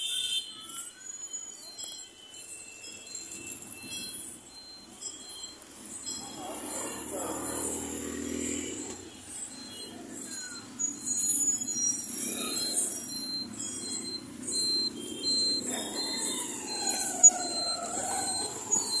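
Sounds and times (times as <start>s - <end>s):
street traffic: 0.0s - 19.0s
wavering tones: 0.8s - 19.0s
short high beeps: 1.3s - 19.0s.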